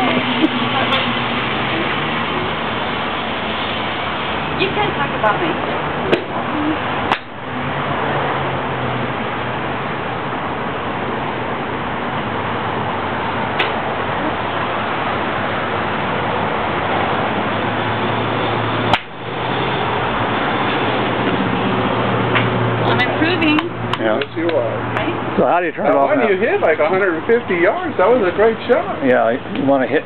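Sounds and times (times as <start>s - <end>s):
golf club striking ball: 13.6s - 13.8s, 18.9s - 19.2s.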